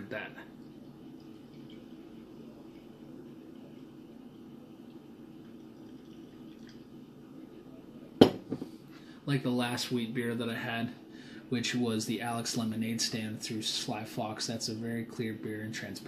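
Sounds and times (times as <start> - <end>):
beer pouring into glass: 0.1 - 8.4.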